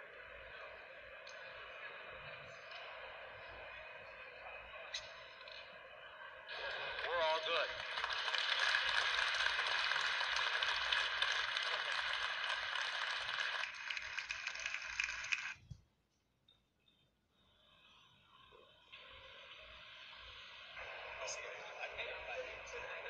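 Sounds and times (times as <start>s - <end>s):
audience applauding: 6.5s - 15.6s.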